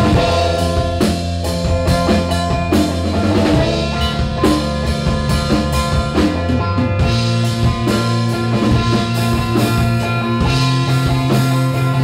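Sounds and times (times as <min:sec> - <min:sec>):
drum kit: 0:00.0 - 0:12.0
rock band playing: 0:00.0 - 0:12.0.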